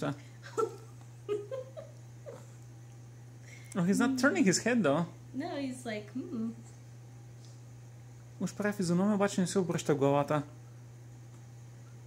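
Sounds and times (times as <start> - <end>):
faint low hum: 0.0 - 12.0.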